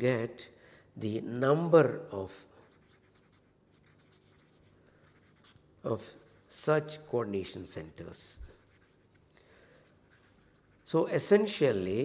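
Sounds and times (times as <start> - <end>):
marker scratching on paper: 2.6 - 11.0.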